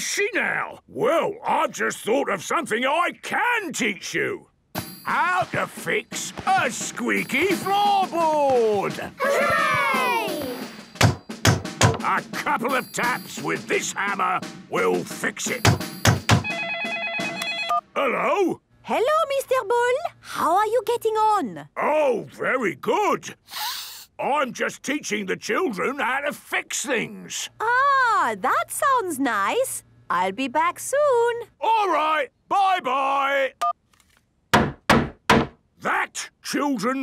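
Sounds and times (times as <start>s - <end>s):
telephone ringing: 15.6s - 17.9s
hammer tapping on wooden floorboard: 34.6s - 35.6s.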